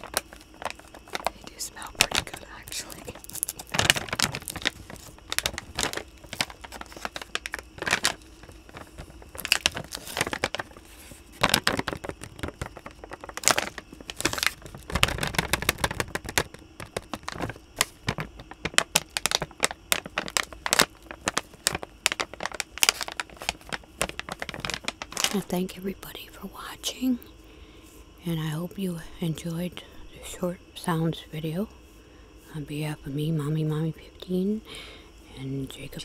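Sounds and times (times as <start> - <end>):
plastic bag crinkling: 0.0 - 25.9.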